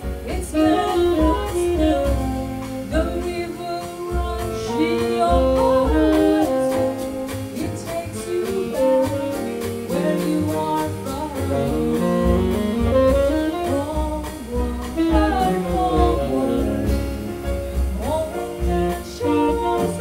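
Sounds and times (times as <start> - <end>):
drums on cymbals: 0.0 - 20.0
walking upright bass: 0.0 - 20.0
woman singing: 0.0 - 20.0
tenor saxophone: 0.3 - 20.0.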